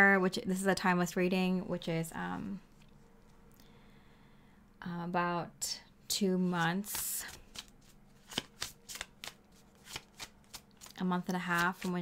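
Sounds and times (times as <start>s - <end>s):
cards shuffling and snapping: 6.6s - 12.0s.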